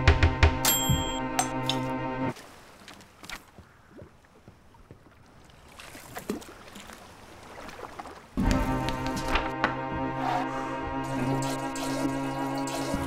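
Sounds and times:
music: 0.0s - 2.3s, 8.4s - 13.0s.

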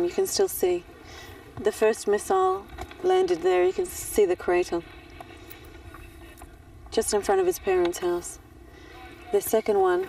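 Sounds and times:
outdoor background hum: 0.0s - 10.0s.

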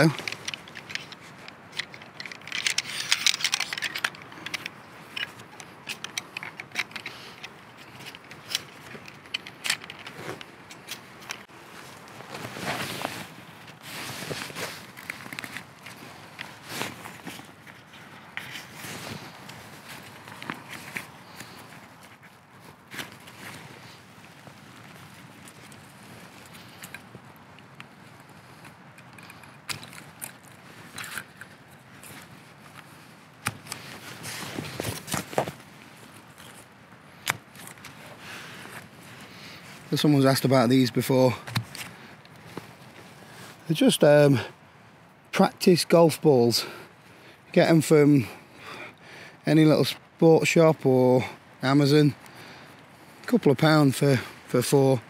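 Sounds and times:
metal poles clicking and scraping: 0.0s - 11.5s
nylon fabric rustling: 11.4s - 26.6s.

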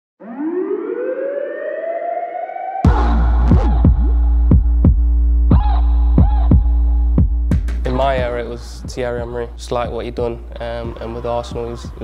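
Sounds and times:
rising siren-like wail: 0.2s - 4.9s.

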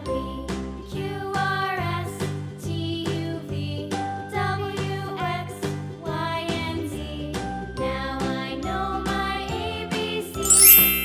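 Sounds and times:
light children's tune: 0.0s - 11.0s
rising sparkly chime effect: 10.4s - 11.0s.

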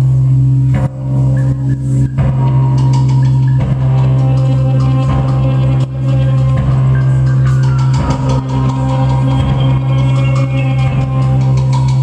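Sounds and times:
live band playing distorted: 0.0s - 12.0s.

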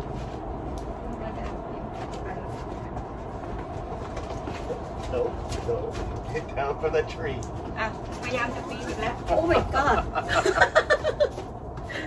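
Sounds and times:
steady low rumble: 0.0s - 12.0s
woman speaking: 1.1s - 2.9s, 7.8s - 10.3s.

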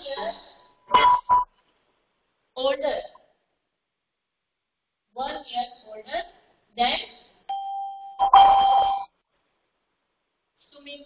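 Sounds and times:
steady electronic tone: 0.9s - 1.6s.

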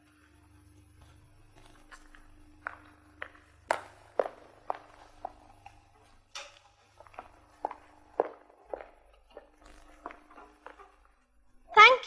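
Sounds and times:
clicking footsteps: 1.0s - 11.3s.

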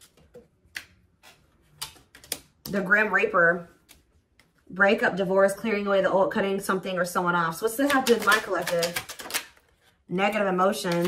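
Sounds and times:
cards clicking when handled: 7.9s - 9.6s.

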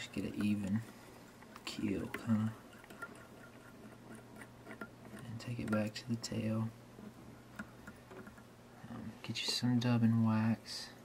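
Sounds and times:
thread winding ticks: 0.0s - 6.4s.

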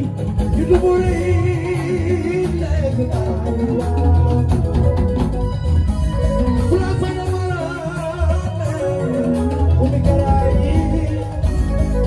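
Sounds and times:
live band bass and drums: 0.0s - 12.0s
man singing with vibrato: 0.0s - 12.0s.

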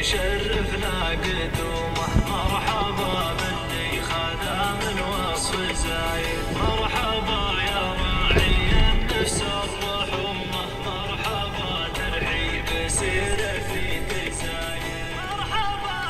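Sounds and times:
man singing: 0.0s - 16.0s
music: 0.0s - 16.0s.

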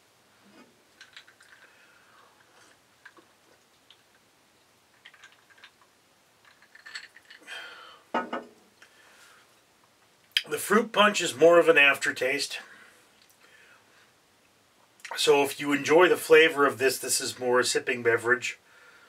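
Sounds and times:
man sipping a drink: 0.4s - 4.1s.

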